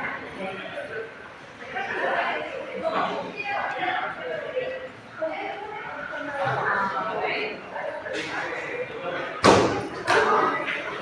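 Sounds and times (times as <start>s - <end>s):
people talking: 0.0s - 11.0s
sharp thump: 9.4s - 9.8s.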